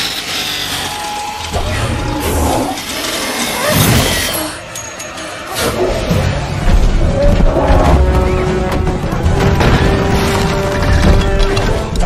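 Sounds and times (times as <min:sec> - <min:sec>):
action film score music: 0:00.8 - 0:12.0.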